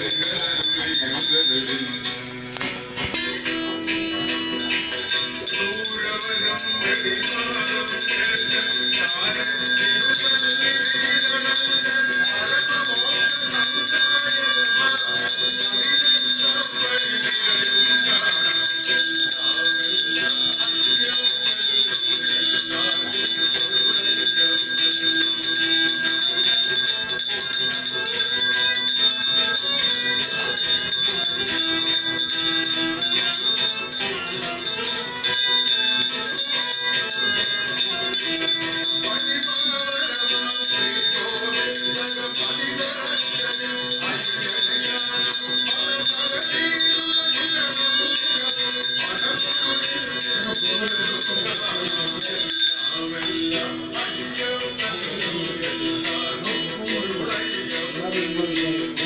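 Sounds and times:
bells ringing and rattling: 0.0 - 59.0.

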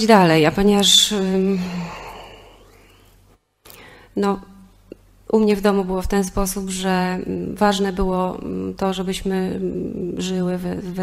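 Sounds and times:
woman speaking: 0.0 - 2.6, 4.2 - 4.6, 5.3 - 11.0
woman sighing breathily: 1.4 - 3.1.

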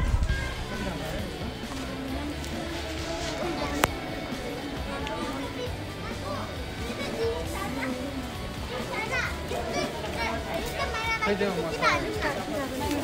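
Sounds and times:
background music: 0.0 - 13.0
passers-by talking: 0.0 - 13.0.

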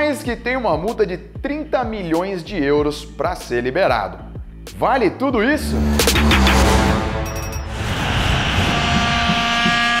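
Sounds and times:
low rumble: 5.5 - 9.7
rushing whoosh: 5.6 - 9.6
held chord of high tones: 7.2 - 7.8.

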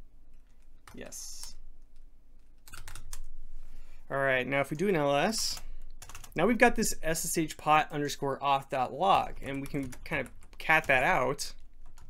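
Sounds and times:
typing on computer keyboard: 2.5 - 3.3, 5.5 - 6.4, 9.4 - 12.0.

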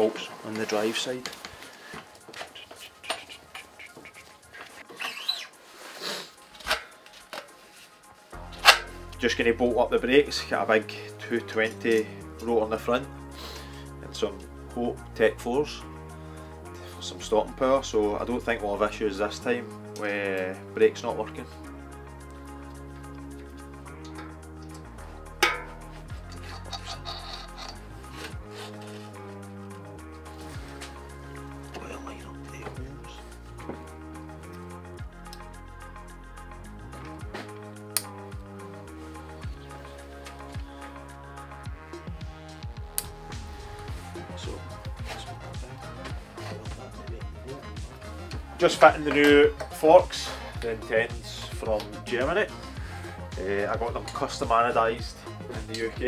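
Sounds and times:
background music with bass line: 0.0 - 56.0
metal scrapes: 4.3 - 9.1, 24.1 - 29.3
brief squeak: 4.9 - 5.6
tools clicking on bicycle parts: 25.4 - 28.4.

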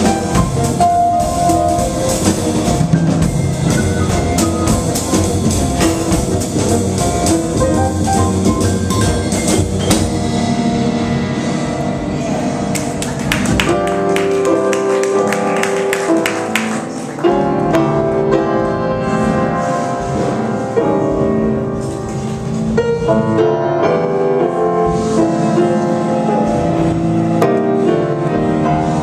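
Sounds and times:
upright double bass: 0.0 - 14.6
drum kit: 0.0 - 18.4
grand piano: 0.0 - 29.0.

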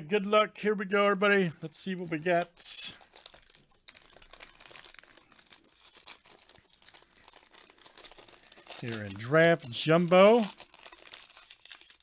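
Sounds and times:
plastic wrapper crinkling: 1.6 - 12.0.

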